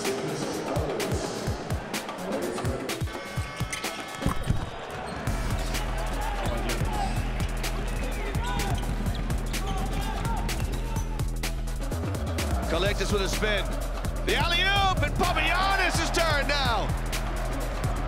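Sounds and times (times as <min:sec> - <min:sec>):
background music with deep bass: 0:00.0 - 0:04.3, 0:05.2 - 0:18.0
shoe squeaks: 0:03.2 - 0:05.3.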